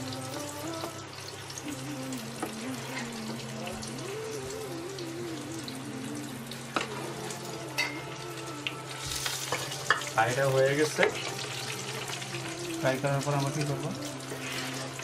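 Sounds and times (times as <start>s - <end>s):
food sizzling in hot oil: 0.0s - 15.0s
metal spoon clinking against pot: 7.8s - 8.0s.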